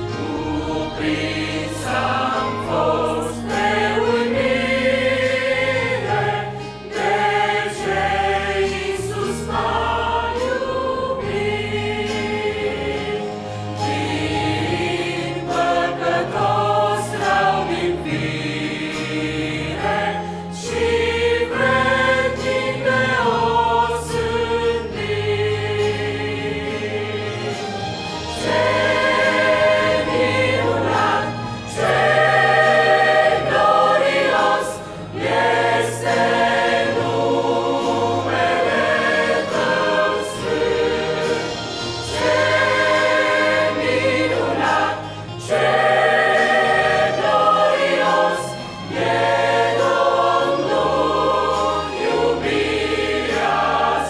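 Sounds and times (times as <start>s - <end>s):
mixed choir singing a hymn: 0.0s - 54.0s.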